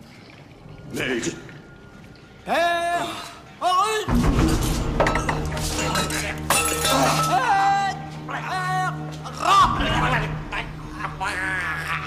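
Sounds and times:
low music drone: 0:04.2 - 0:12.0
glassy clinking: 0:05.0 - 0:07.4.

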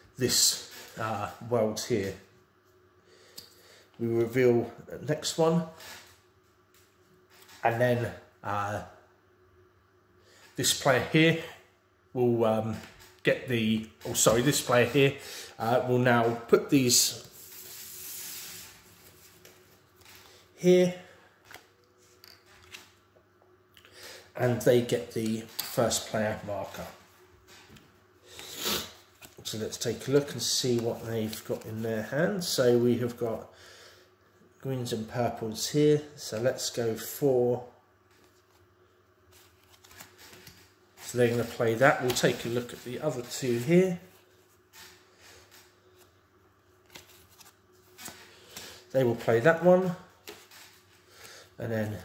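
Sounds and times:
playing cards rustling and sliding: 0:16.2 - 0:20.5, 0:24.5 - 0:32.6, 0:38.1 - 0:52.0
playing cards handled on table: 0:39.3 - 0:43.5, 0:46.8 - 0:49.4.

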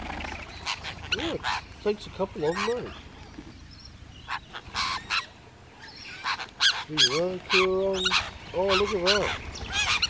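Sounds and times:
lorikeets giving short high calls: 0:00.1 - 0:10.0.

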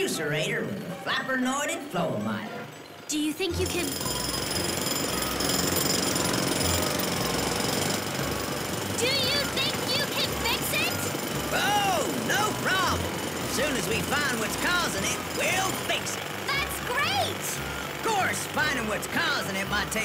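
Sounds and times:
jackhammer pounding: 0:03.4 - 0:20.0.

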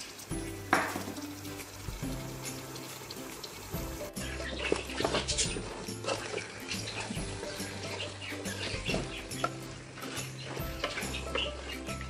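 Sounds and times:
background music: 0:00.0 - 0:12.0
spatula stirring wet chicken: 0:00.0 - 0:12.0.

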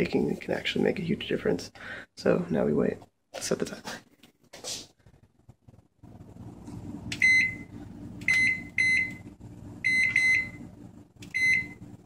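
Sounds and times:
low steady hum: 0:05.0 - 0:12.0
microwave keypad beeps: 0:07.2 - 0:10.6, 0:11.2 - 0:11.8.

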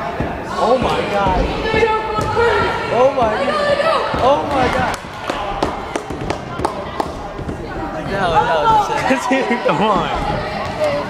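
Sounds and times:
sharp knocks echoing: 0:00.0 - 0:07.9
murmur of voices: 0:00.0 - 0:11.0.

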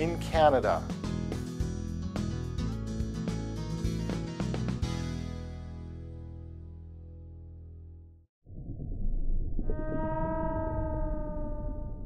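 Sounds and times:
low rumble: 0:08.5 - 0:12.0
whale-like call: 0:09.6 - 0:12.0.

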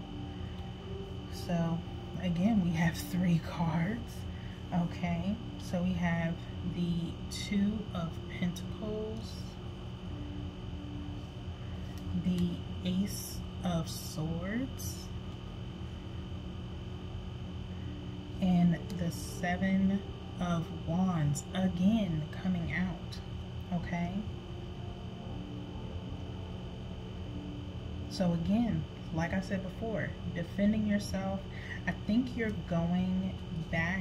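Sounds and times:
electrical hum: 0:00.0 - 0:34.0
faint high-pitched whine: 0:00.0 - 0:34.0.

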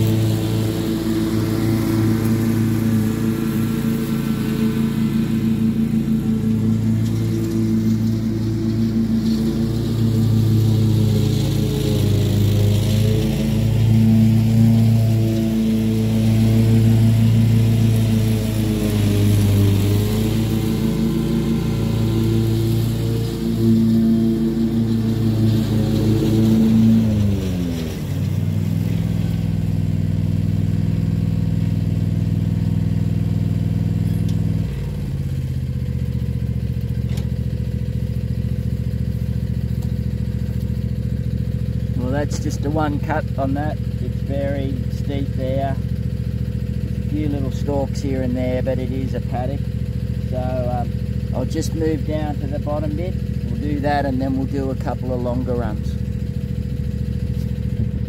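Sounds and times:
mower engine running: 0:00.0 - 0:58.0.

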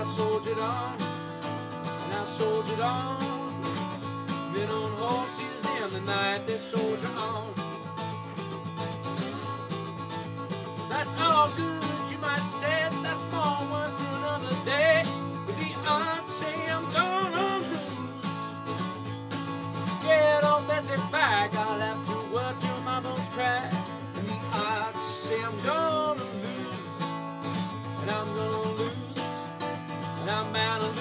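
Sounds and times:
man singing: 0:00.0 - 0:07.8, 0:10.9 - 0:18.8, 0:19.8 - 0:27.1, 0:27.8 - 0:29.5, 0:30.1 - 0:31.0
acoustic guitar strumming: 0:00.0 - 0:31.0.

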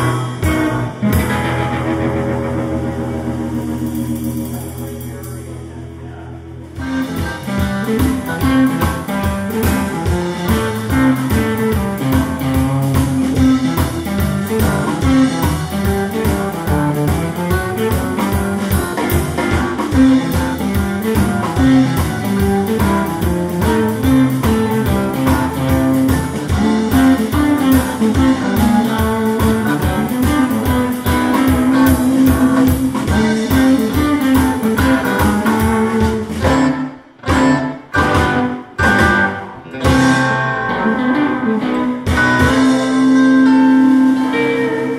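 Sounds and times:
live blues band: 0:00.0 - 0:44.9.

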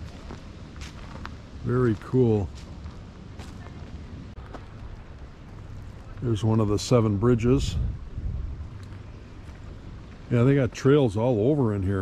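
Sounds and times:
wind buffeting microphone: 0:03.3 - 0:10.3.

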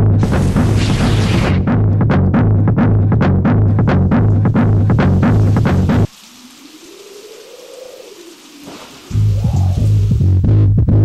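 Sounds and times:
soft electronic hiss: 0:04.1 - 0:10.6.

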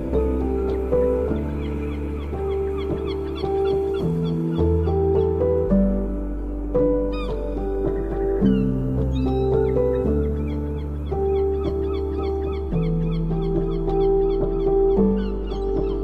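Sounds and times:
slow ambient instrumental music: 0:00.0 - 0:16.0.

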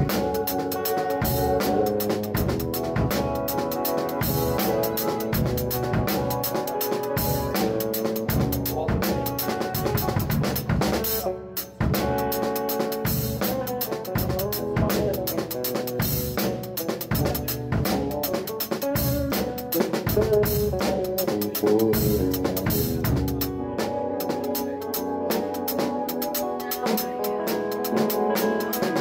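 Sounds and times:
drum kit shuffle groove: 0:00.0 - 0:29.0
sustained keyboard notes: 0:00.0 - 0:29.0.

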